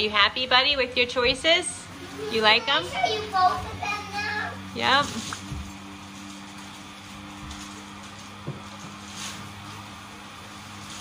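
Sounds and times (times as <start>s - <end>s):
blower fans humming: 0.0s - 11.0s.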